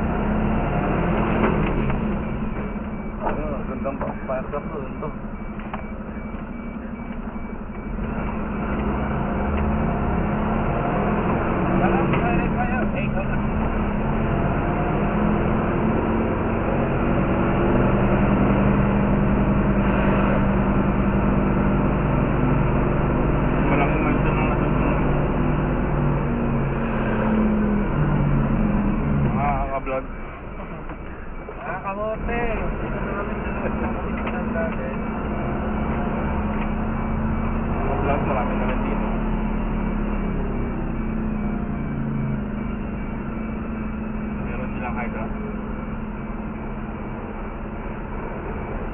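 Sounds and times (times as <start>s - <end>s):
fire truck engine running: 0.0s - 48.9s.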